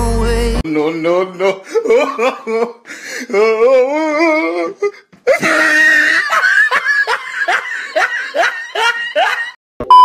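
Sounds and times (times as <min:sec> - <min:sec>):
child laughing: 0:05.3 - 0:09.6.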